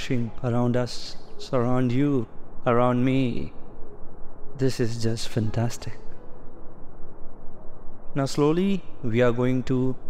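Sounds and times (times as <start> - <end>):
low rumble of background noise: 0.0 - 10.0.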